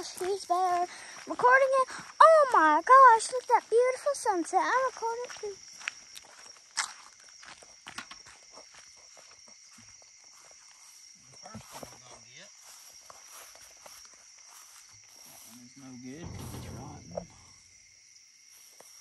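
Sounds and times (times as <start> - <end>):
insects chorus: 0.0 - 19.0.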